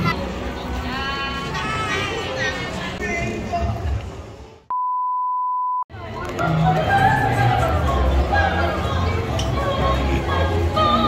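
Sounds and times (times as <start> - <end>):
high electronic beep: 4.7 - 5.8.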